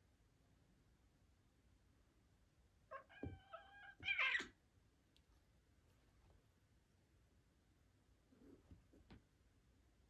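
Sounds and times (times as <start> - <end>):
cat crying harshly: 2.9 - 4.5
cat meowing: 2.9 - 4.6.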